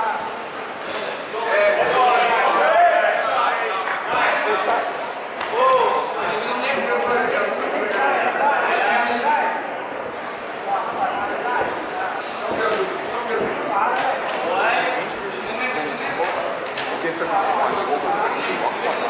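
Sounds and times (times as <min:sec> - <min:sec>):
crowd shouting in hall: 0:01.3 - 0:06.2.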